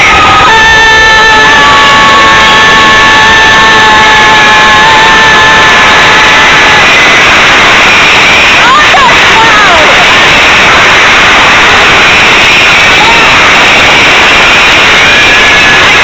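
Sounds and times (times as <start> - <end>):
high-pitched squeal: 0.0 - 16.0.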